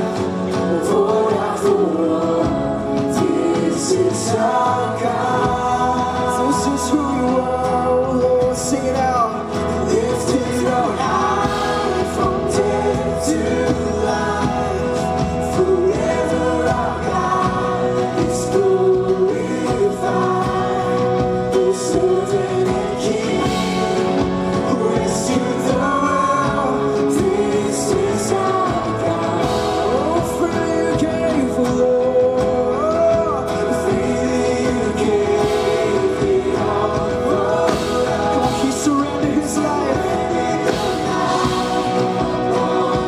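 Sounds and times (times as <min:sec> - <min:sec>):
band playing worship music: 0:00.0 - 0:43.0
group of singers singing: 0:00.0 - 0:43.0.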